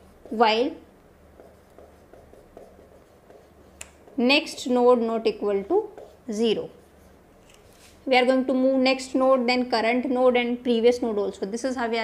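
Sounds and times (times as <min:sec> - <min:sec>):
marker writing on whiteboard: 0:00.0 - 0:07.6
low room hum: 0:00.0 - 0:12.0.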